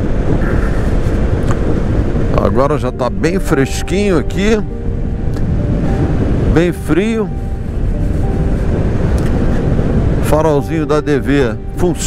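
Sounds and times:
scooter road drone: 0.0s - 12.0s
wind rush: 0.0s - 12.0s.

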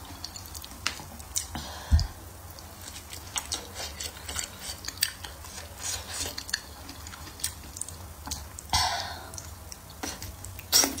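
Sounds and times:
person slurping food: 10.0s - 11.0s.

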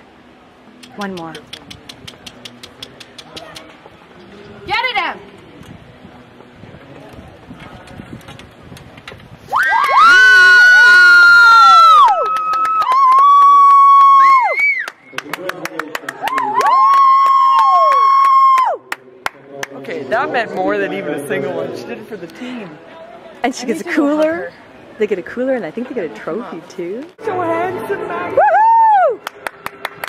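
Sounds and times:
hand claps: 0.8s - 3.7s, 12.0s - 14.2s, 14.8s - 19.8s, 29.2s - 30.0s
people screaming cheers: 9.5s - 15.0s, 16.2s - 18.8s, 28.4s - 29.3s.

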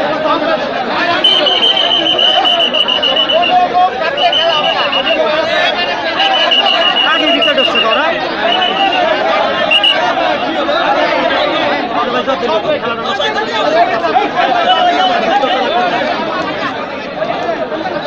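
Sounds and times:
crowd talking and calling out: 0.0s - 18.0s
short high steady tones: 1.1s - 9.1s, 9.7s - 10.0s, 14.6s - 15.6s.

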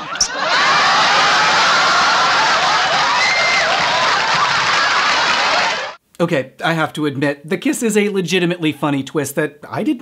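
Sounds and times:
studio audience laughing and cheering: 0.0s - 6.0s.

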